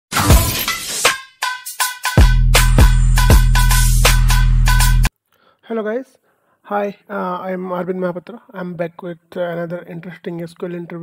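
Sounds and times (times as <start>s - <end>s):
glass breaking crash: 0.1s - 1.1s.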